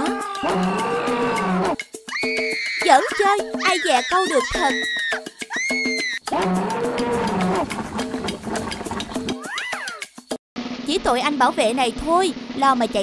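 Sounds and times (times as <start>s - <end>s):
high arching cry: 0.0s - 6.2s.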